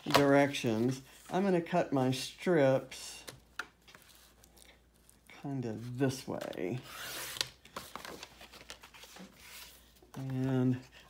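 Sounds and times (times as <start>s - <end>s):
paper rustling: 5.8s - 10.8s.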